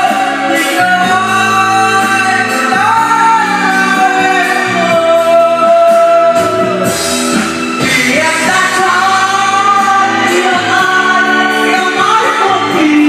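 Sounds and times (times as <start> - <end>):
loud backing track: 0.0 - 13.0
man singing into microphone: 0.0 - 13.0.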